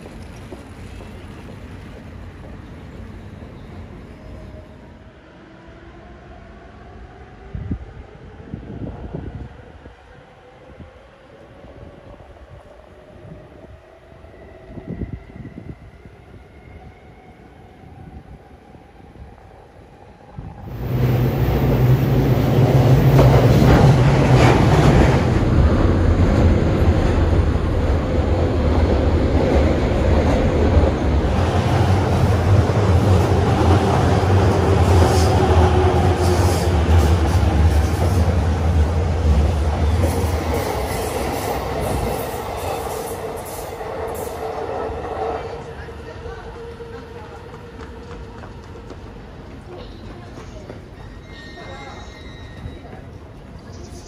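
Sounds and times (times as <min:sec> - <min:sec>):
train wheels rushing on rails: 0:00.0 - 0:04.3, 0:20.6 - 0:53.7.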